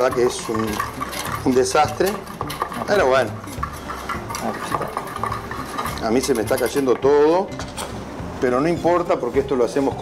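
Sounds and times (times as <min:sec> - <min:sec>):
whisk clicking against pot: 0:00.0 - 0:07.5.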